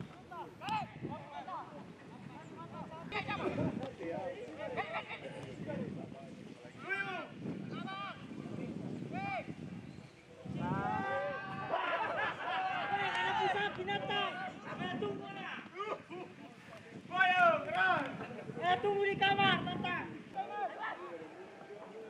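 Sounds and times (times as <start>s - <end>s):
men shouting outdoors: 6.8s - 8.4s, 10.4s - 22.0s.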